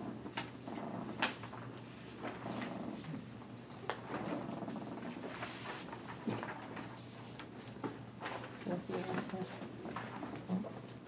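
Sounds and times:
low room hum: 0.0s - 11.0s
paper rustling: 5.2s - 10.9s.

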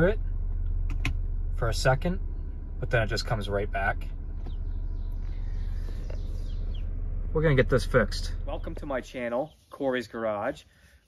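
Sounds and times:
car engine idling: 0.0s - 10.5s
faint bird chirps: 4.4s - 7.0s.

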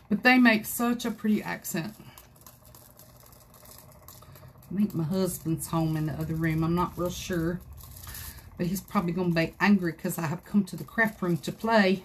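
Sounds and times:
glitter pattering onto surface: 1.2s - 12.0s.

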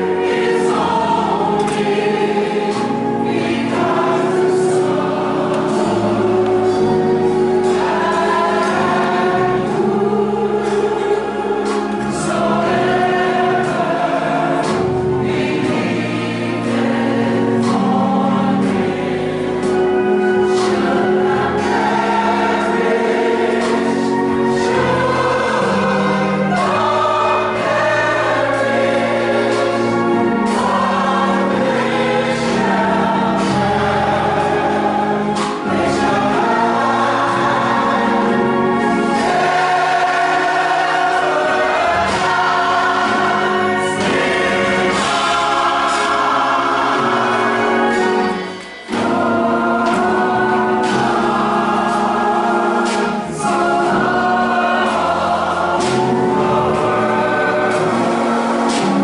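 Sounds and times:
gospel choir singing: 0.0s - 59.0s.

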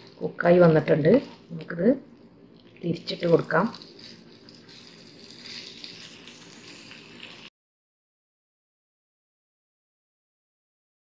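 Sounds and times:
fish sizzling in frying pan: 3.0s - 7.5s.

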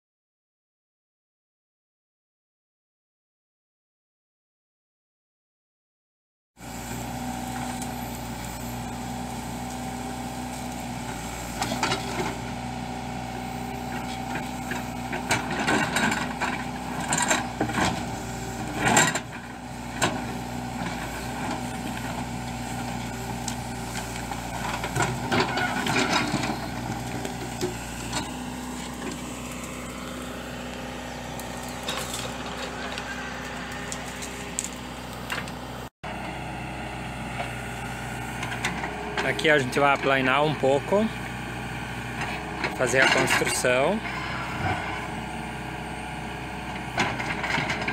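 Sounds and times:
diesel engine running under load: 6.6s - 47.9s.

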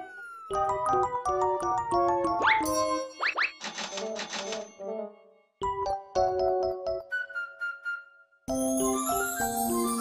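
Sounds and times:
fast cartoon rattling: 3.2s - 4.7s.

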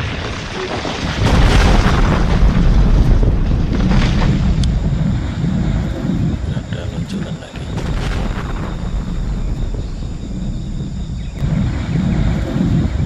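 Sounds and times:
deep rumbling of rockfall: 0.0s - 6.8s, 7.6s - 13.0s.

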